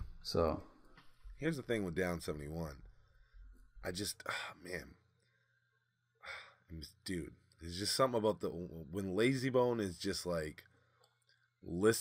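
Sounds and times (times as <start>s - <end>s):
man speaking: 0.0s - 0.7s, 1.4s - 2.9s, 3.8s - 5.0s, 6.3s - 10.6s, 11.7s - 12.0s.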